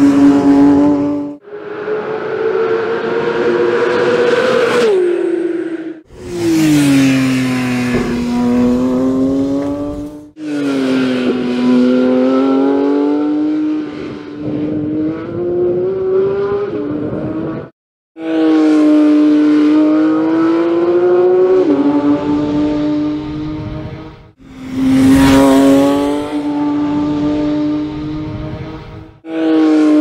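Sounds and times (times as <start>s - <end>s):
race car engine passing by: 0.0s - 16.8s, 18.2s - 30.0s.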